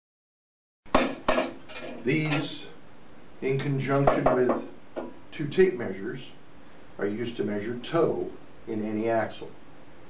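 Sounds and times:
metal bar knocking on table: 0.9 - 2.0, 4.0 - 5.2.

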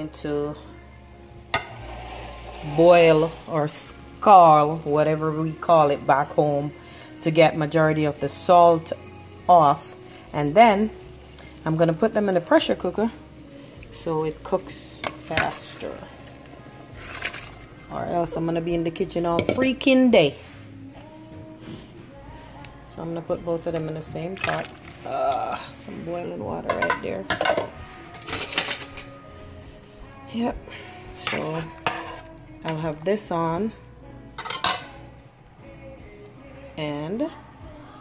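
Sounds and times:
metal pot and utensil clinking: 1.5 - 3.3, 19.3 - 19.8, 26.6 - 29.2, 31.2 - 32.9, 34.4 - 35.1.

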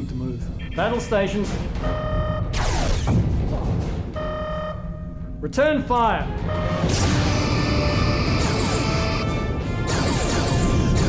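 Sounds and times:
repeating alarm tone: 1.8 - 3.2, 4.2 - 5.2, 6.4 - 11.0
falling zap blast: 2.5 - 3.4.

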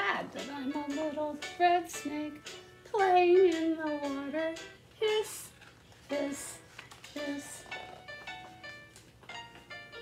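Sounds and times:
instrumental backing music: 0.0 - 10.0.

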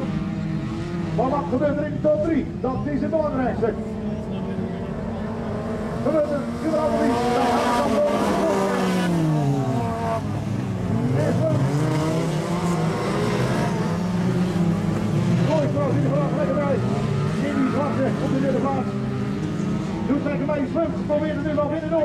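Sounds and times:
race car engines revving: 0.0 - 22.0.

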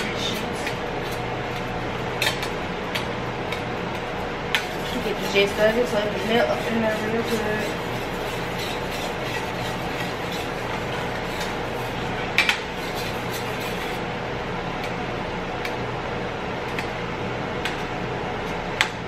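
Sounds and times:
spatula mashing sauce: 0.0 - 14.0.

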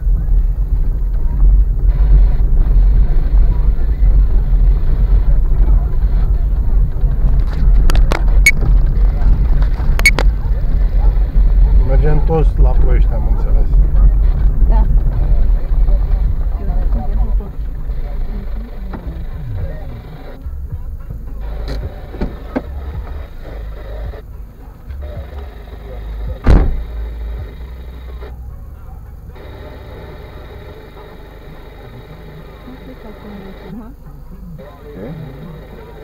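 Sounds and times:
car rolling over rough dirt road: 0.0 - 24.3
car engine idling: 0.0 - 36.0
sharp knock: 26.4 - 26.8.

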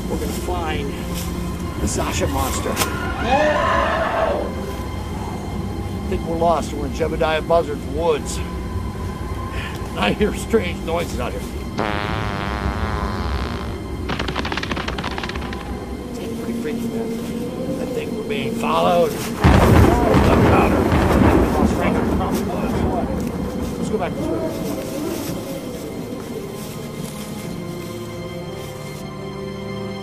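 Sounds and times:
background music: 0.0 - 30.0
loud rumbling boom: 19.4 - 23.2.

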